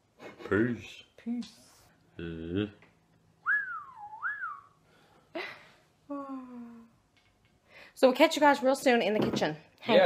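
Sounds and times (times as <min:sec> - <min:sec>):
person whistling swooping phrase: 0:03.5 - 0:04.7.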